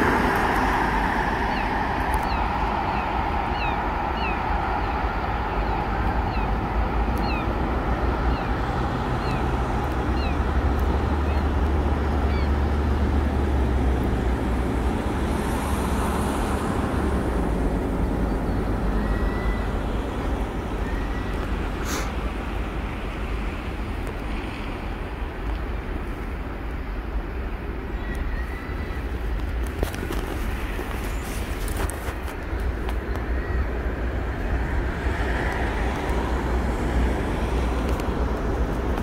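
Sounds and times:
low vehicle rumble: 0.0 - 39.0.

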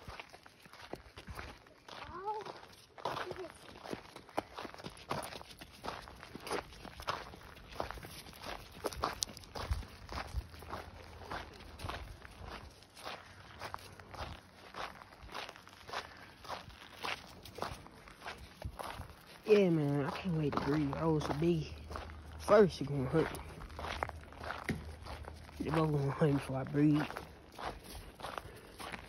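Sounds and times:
footsteps on gravel road: 0.0 - 29.0.

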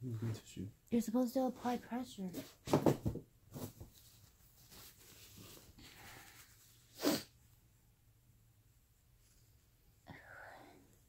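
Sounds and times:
sharp burst of breath: 5.8 - 7.3.

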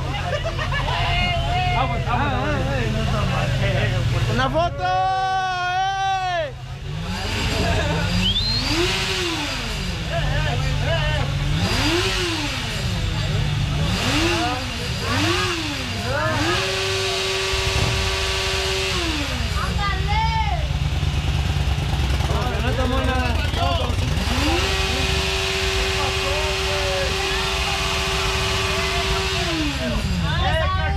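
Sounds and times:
motorcycle engine revving: 0.0 - 4.8, 6.4 - 30.9
crowd voices: 0.0 - 30.9.

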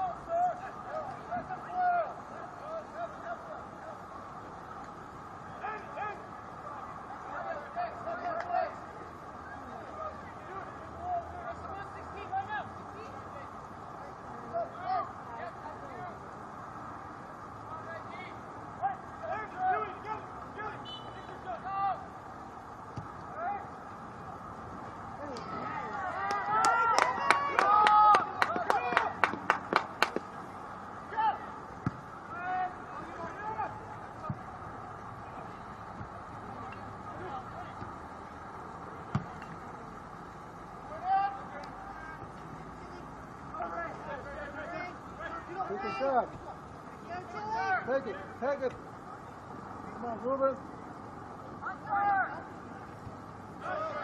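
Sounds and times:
players and spectators shouting: 0.0 - 50.6, 51.4 - 54.0
sharp claps: 26.2 - 30.3.

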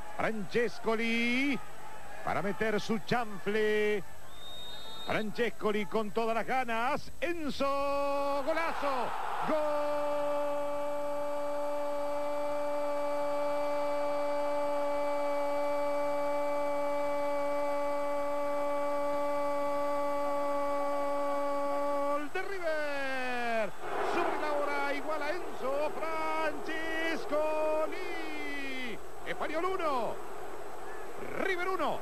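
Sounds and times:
commentator shouting goal cry: 7.7 - 17.8, 19.8 - 30.2.

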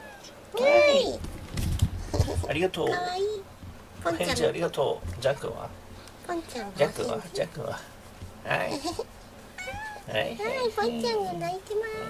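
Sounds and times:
cat meowing: 0.0 - 0.9, 9.6 - 10.2.

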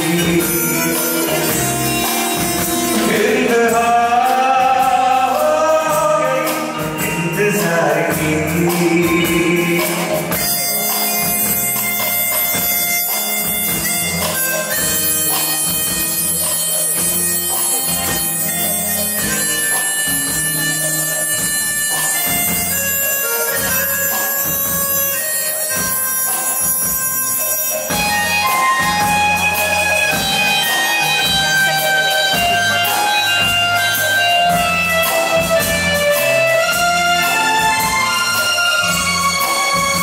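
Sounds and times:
bass guitar: 0.0 - 40.0
keyboard lead melody: 0.0 - 40.0
steady drum beat: 0.0 - 40.0.

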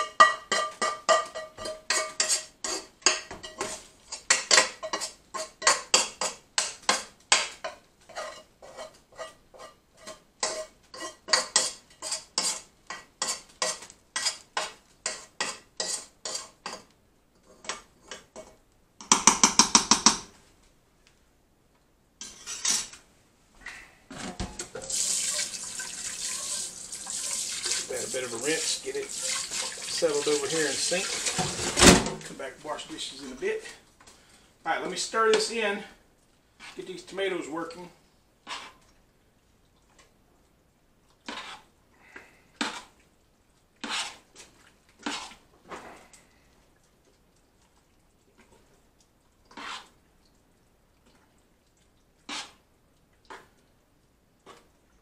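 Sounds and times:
spoon knocking on metal pans: 0.0 - 16.9, 17.6 - 20.3
kitchen tap running: 24.6 - 31.8.

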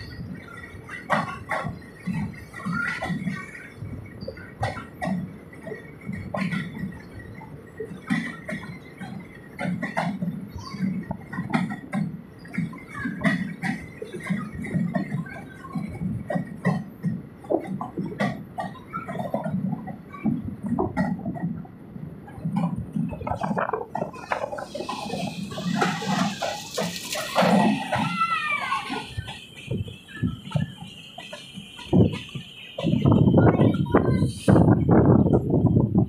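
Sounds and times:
train wheels clattering: 0.0 - 36.0
wind rushing over microphone: 19.3 - 28.1, 29.0 - 36.0.

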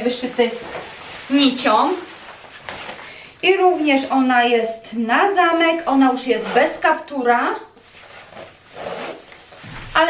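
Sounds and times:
jacket fabric rustling: 0.0 - 4.0, 5.3 - 10.0
jacket zip being pulled up: 8.0 - 9.6.

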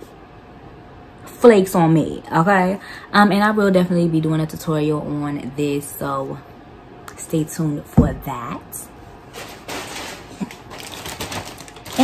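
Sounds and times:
plastic packaging crinkling: 9.3 - 12.0.

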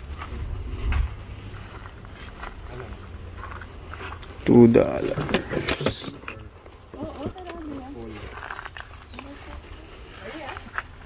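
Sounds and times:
steady low rumble: 0.0 - 5.1.

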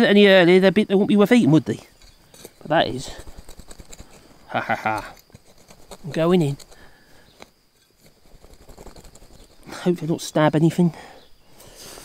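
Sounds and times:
earth scraping and crumbling: 1.8 - 10.2
hand fork digging into soil: 1.9 - 9.7.

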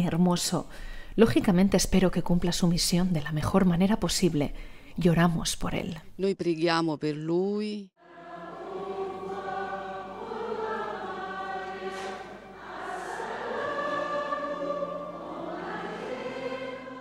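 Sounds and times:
choir singing in harmony: 8.0 - 17.0.

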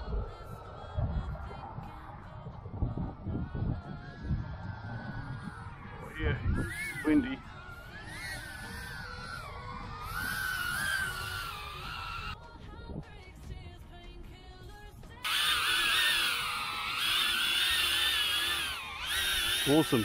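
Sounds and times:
quadcopter propellers whining: 3.3 - 12.4, 15.2 - 20.0.

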